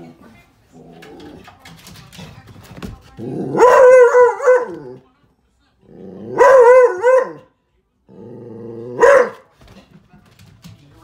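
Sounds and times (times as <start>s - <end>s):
dog howling barks: 3.4s - 5.0s, 6.3s - 7.5s, 8.8s - 9.4s.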